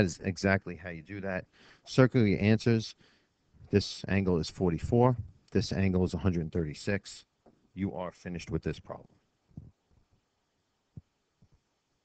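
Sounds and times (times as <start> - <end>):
faint hiss: 0.0 - 9.8
soft low thumps: 4.5 - 5.9.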